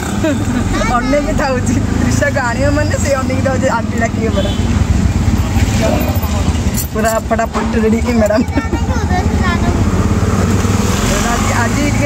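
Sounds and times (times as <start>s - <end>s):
auto-rickshaw engine rumbling: 0.0s - 12.0s.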